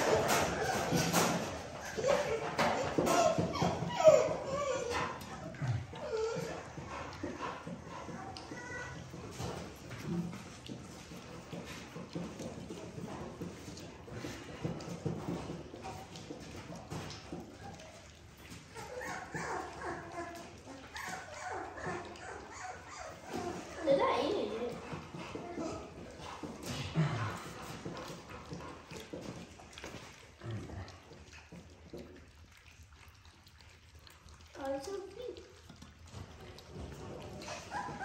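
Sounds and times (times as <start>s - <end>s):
puppies whimpering: 0.0s - 11.5s, 14.1s - 27.3s, 32.6s - 38.0s
puppies lapping and slurping: 0.0s - 38.0s.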